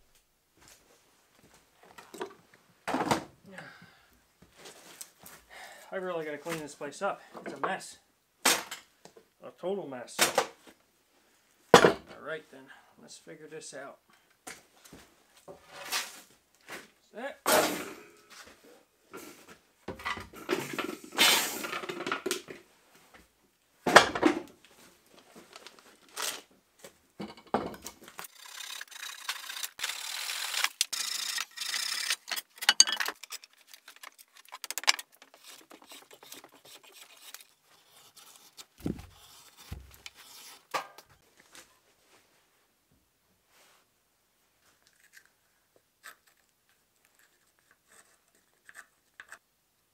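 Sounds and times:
handsaw cutting wood: 28.2 - 32.4, 35.3 - 40.7.

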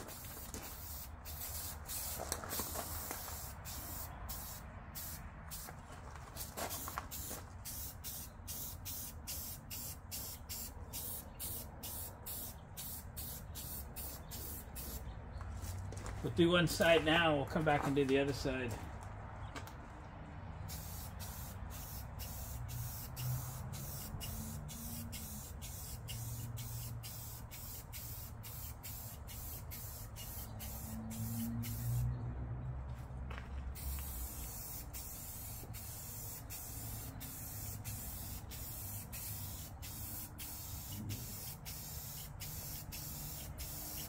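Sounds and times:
spray paint can hissing: 0.0 - 15.0, 20.7 - 32.1, 33.8 - 44.0.

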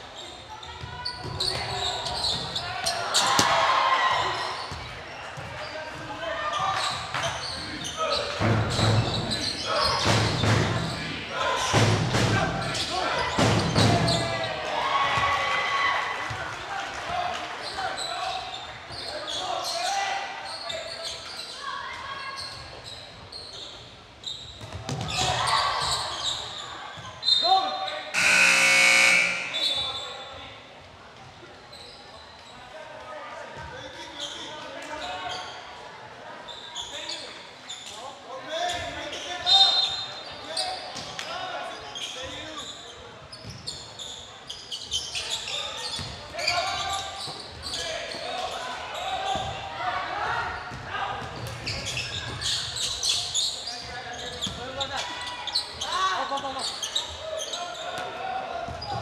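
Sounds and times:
sneakers squeaking on hardwood: 0.2 - 3.6, 4.2 - 11.1, 20.5 - 30.2, 42.0 - 48.2, 50.5 - 55.9
loud buzzer: 28.2 - 29.8
people calling out: 28.2 - 30.0.

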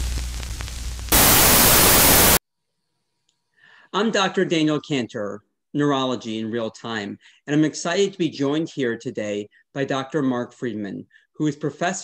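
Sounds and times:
tv static hiss: 0.0 - 2.4.

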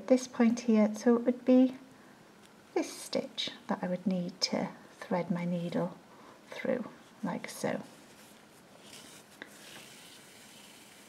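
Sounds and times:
yarn rustling: 7.0 - 11.0.

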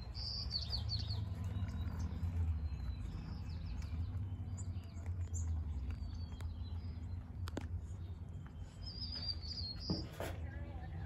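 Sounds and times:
small bird chirping: 0.0 - 10.2.

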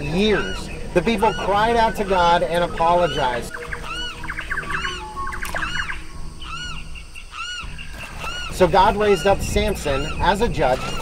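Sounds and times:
bird calling: 0.0 - 11.0
rapid chattering bird calls: 0.0 - 11.0.

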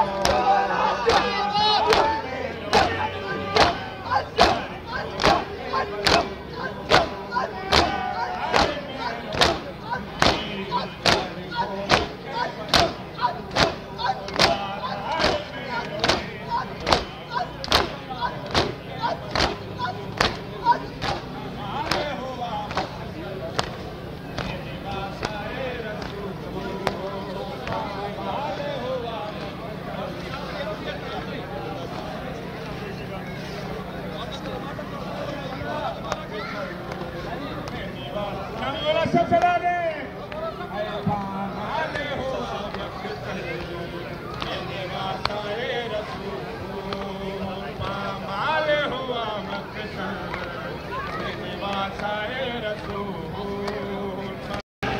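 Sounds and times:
voice chanting a lament: 0.0 - 23.8
crowd beating chests: 0.0 - 28.2.

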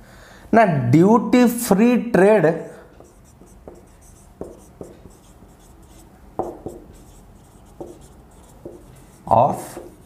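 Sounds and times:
marker tip tapping board: 3.0 - 9.0, 9.6 - 10.0
marker scratching on whiteboard: 3.0 - 10.0.

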